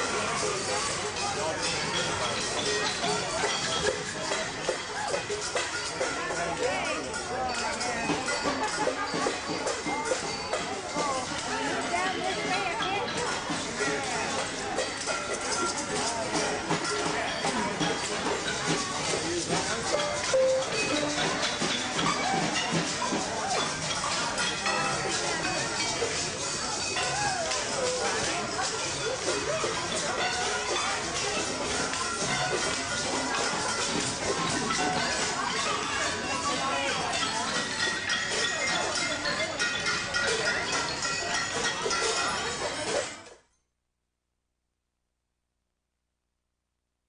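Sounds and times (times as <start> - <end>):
children chattering: 0.0 - 43.3
percussion rattles and taps: 0.0 - 43.4
short held notes: 19.9 - 21.6.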